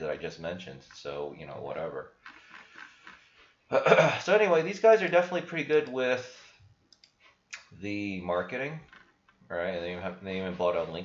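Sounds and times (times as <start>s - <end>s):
faint room noise: 0.0s - 11.0s
man clearing his throat: 3.7s - 4.3s.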